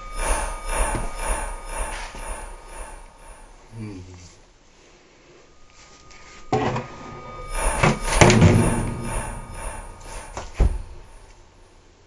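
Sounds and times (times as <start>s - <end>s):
loud bangs and knocks: 7.4s - 11.3s.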